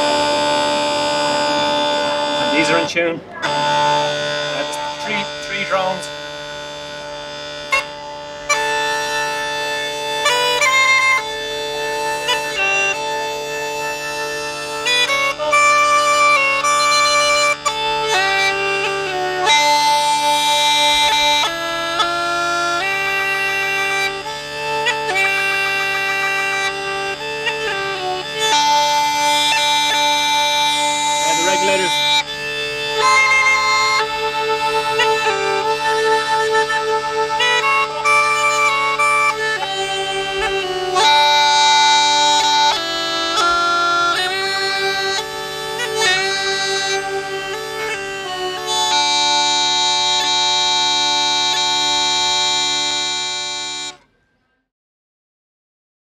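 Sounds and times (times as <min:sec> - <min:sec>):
bagpipe chanter melody: 0:00.0 - 0:54.1
bagpipe drones: 0:00.0 - 0:54.1.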